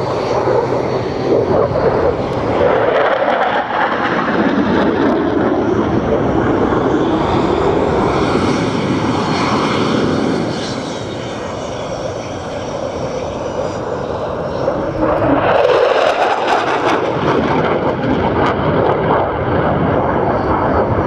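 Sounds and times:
fighter jet rushing noise: 0.0s - 20.2s
faint high jet whine: 0.0s - 21.0s.

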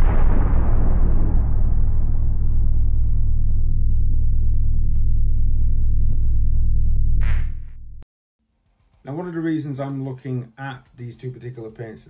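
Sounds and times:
deep boom: 0.0s - 8.0s
loud steady low rumble: 0.0s - 8.0s.

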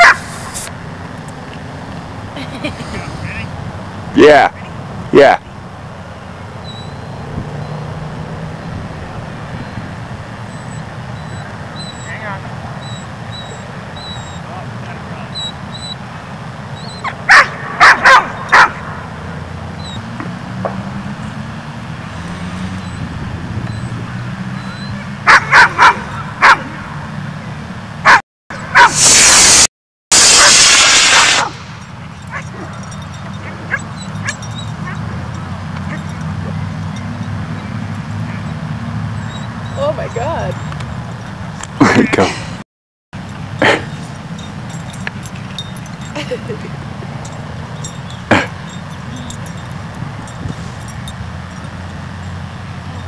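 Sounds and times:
dog barking: 0.0s - 0.3s, 17.0s - 19.0s, 25.0s - 26.8s, 28.0s - 29.0s, 30.3s - 31.6s, 32.3s - 36.7s
loud rush of noise: 28.8s - 32.0s.

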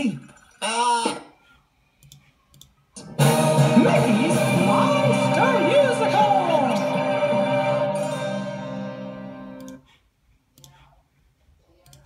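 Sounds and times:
computer mouse clicks: 2.0s - 2.8s, 10.5s - 10.9s.

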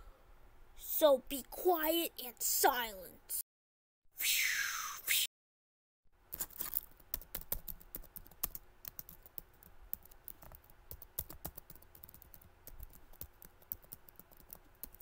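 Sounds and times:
fingers tapping keys: 6.9s - 15.0s.

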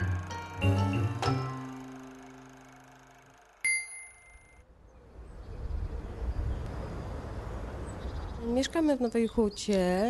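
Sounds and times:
high bell-like ding: 3.6s - 4.6s.

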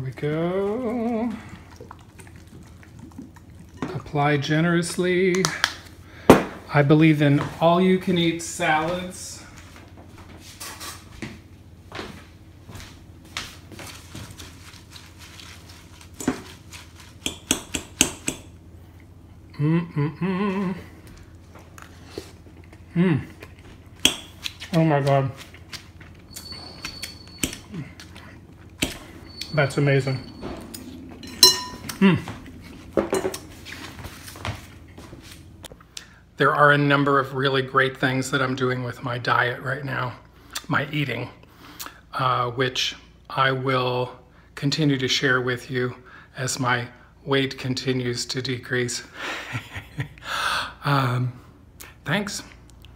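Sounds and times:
lettuce leaves rustling: 13.6s - 17.3s
fork clinking against glass bowl: 30.7s - 32.0s.

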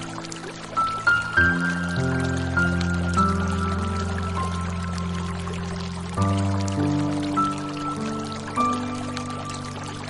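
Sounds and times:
running pouring water: 0.0s - 10.0s
slow soothing piano music: 0.0s - 10.0s.

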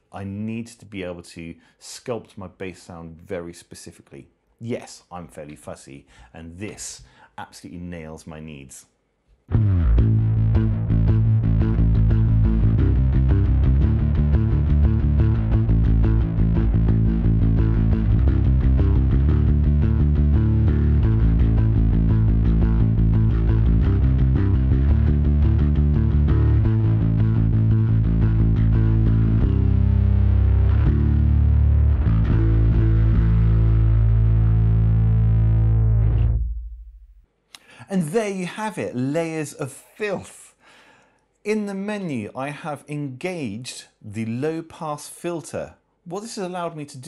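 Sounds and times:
distorted electric bass: 9.5s - 37.3s.

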